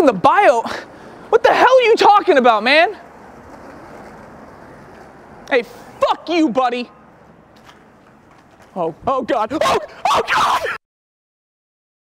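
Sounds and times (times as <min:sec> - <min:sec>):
steady outdoor hiss: 0:00.0 - 0:10.8.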